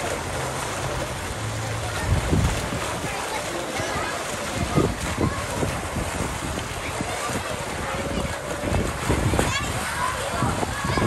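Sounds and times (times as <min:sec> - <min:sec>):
running water: 0:00.0 - 0:11.0
wind on microphone: 0:00.8 - 0:11.0.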